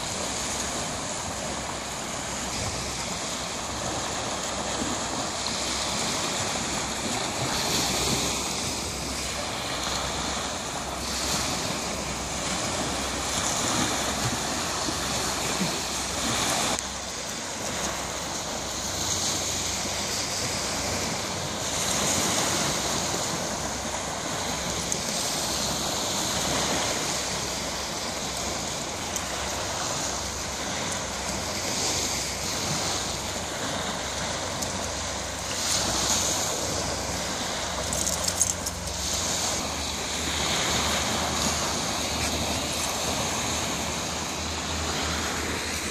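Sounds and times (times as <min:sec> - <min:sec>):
small waves washing up beach: 0:00.0 - 0:45.9.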